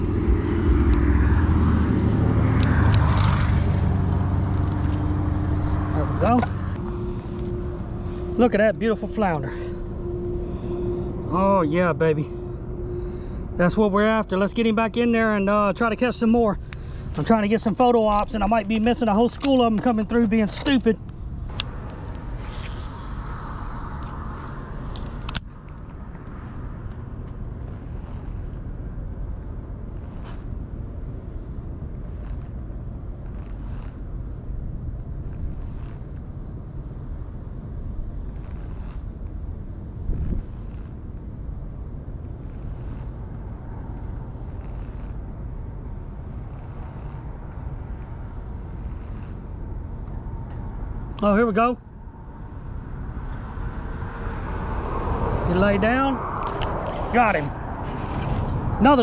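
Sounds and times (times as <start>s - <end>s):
low outdoor rumble: 0.0s - 59.0s.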